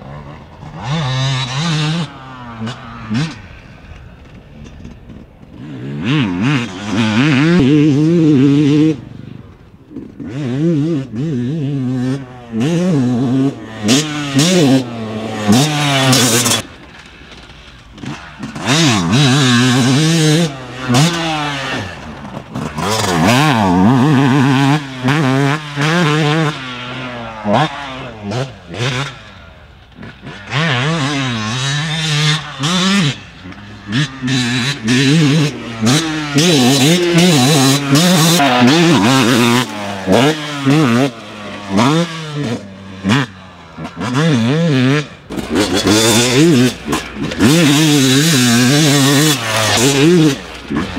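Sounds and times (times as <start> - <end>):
two-stroke engine revving: 0.0 - 50.9.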